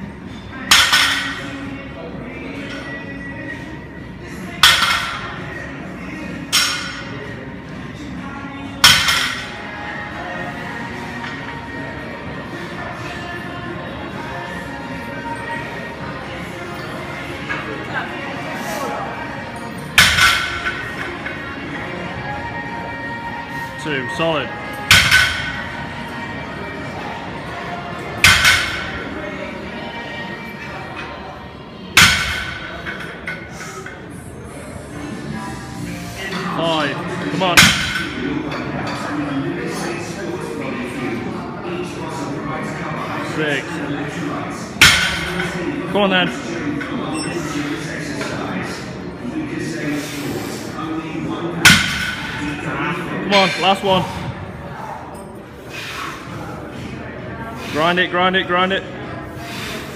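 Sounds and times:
background music: 0.0 - 56.0.

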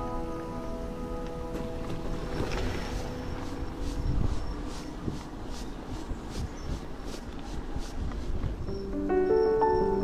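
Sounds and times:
wind noise on microphone: 2.1 - 10.0.

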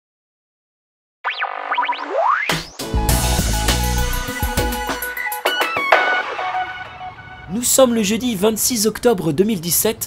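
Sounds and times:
cartoon sliding pitch glides: 1.2 - 4.2.

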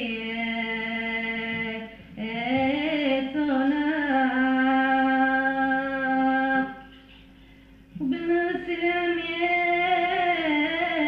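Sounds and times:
woman singing: 0.0 - 6.8, 8.0 - 11.0.

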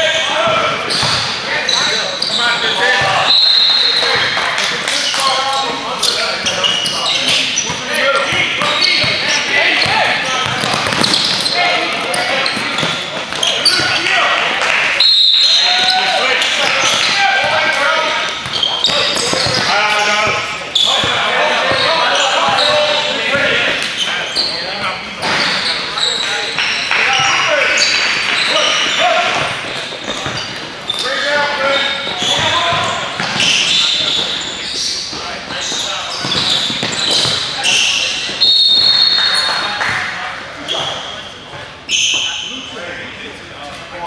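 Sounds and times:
voices calling out in a hall: 0.0 - 44.0.

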